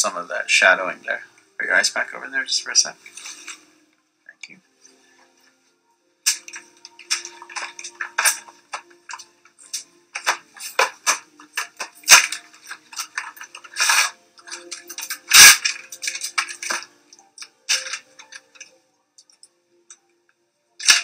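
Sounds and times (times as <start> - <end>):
medical packaging crinkling: 6.3 - 18.8, 20.8 - 21.0.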